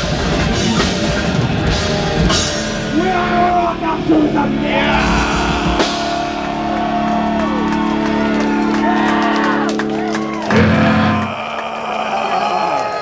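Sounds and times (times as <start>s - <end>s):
crowd shouting and cheering: 0.0s - 13.0s
metal band chord: 2.4s - 7.8s.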